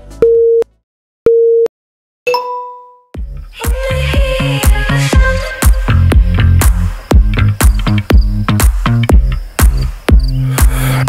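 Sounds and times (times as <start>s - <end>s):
background music: 0.0s - 0.8s, 2.4s - 11.0s.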